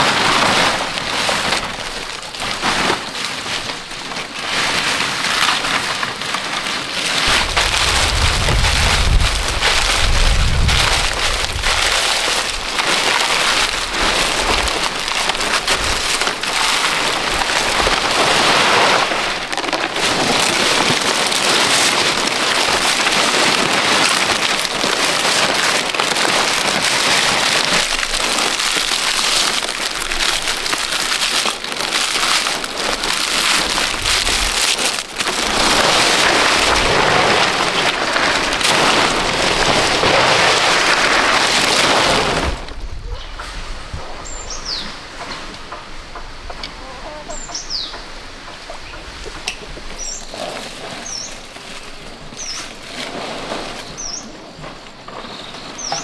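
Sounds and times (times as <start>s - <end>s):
outdoor background: 0.0s - 56.0s
palm fronds rustling and crackling: 0.0s - 56.0s
high falling bird chirps: 44.2s - 45.0s.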